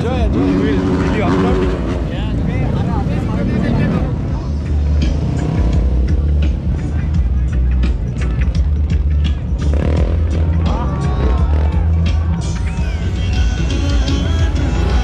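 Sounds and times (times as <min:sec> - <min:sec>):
vehicle engine noise: 0:00.0 - 0:15.0
music with heavy bass beat: 0:04.4 - 0:15.0.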